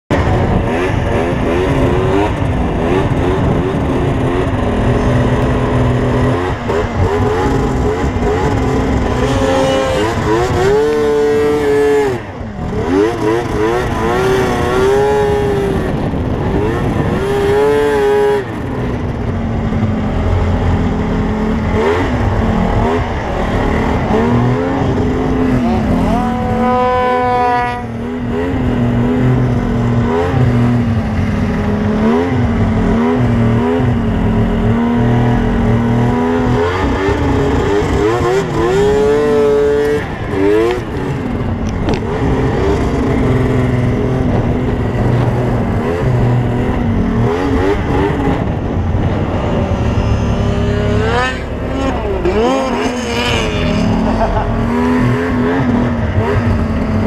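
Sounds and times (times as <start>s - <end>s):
snowmobile engine revving: 0.1s - 57.0s.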